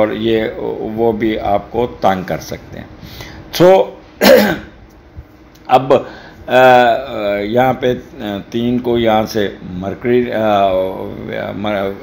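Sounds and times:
man speaking: 0.0s - 4.6s, 5.6s - 12.0s
man clearing his throat: 4.2s - 4.8s.

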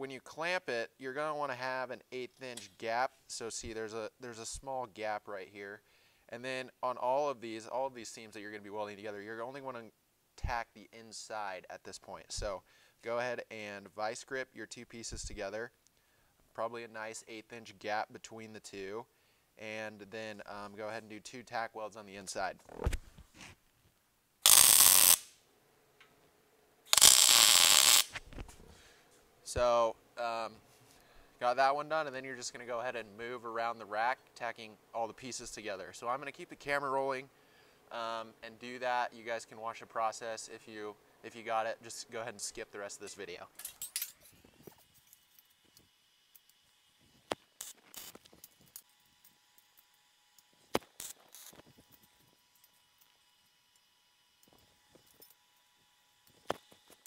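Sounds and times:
welding arc crackling: 24.4s - 25.4s, 26.9s - 28.3s, 45.7s - 48.9s, 50.6s - 52.2s.

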